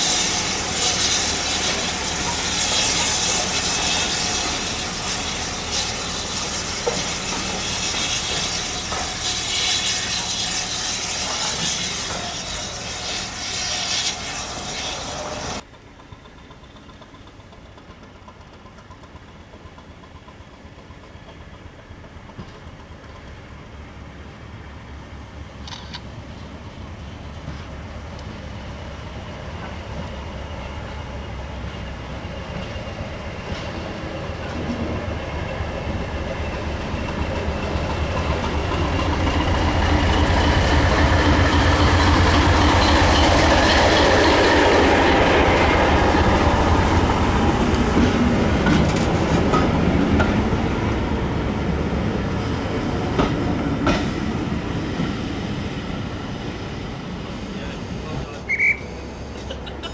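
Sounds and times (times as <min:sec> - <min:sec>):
diesel train engine: 0:00.0 - 0:59.9
train wheels on rails: 0:00.0 - 0:59.9.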